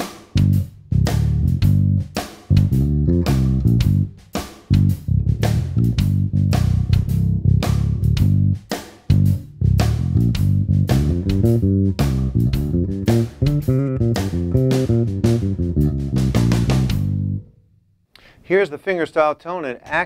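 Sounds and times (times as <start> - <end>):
electric bass plucked notes: 0.4 - 4.1, 4.7 - 17.6.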